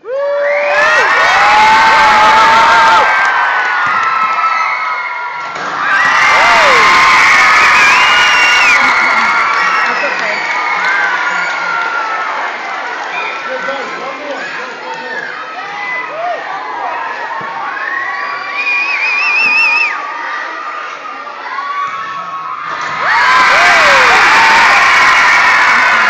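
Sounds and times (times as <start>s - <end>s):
children screaming and cheering: 22.9s - 26.0s.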